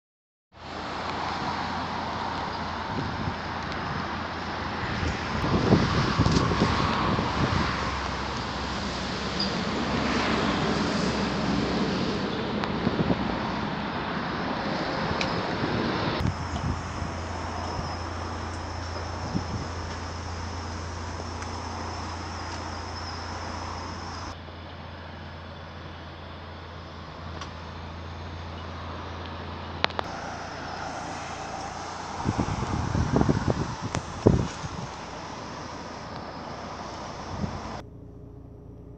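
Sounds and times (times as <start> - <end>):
outdoor background noise: 0.5 - 38.9
wind buffeting microphone: 1.2 - 24.4, 30.0 - 37.8.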